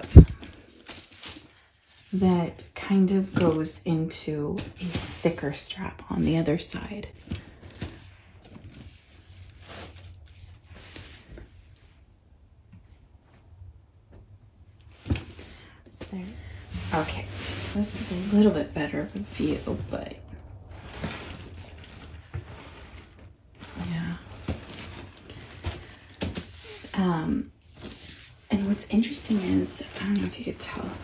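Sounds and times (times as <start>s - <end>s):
leather bag handling noise: 0.0s - 1.6s, 14.9s - 31.0s
bag rustle: 7.3s - 11.3s, 14.9s - 31.0s
leather bag scuffing and rustling: 16.4s - 20.0s.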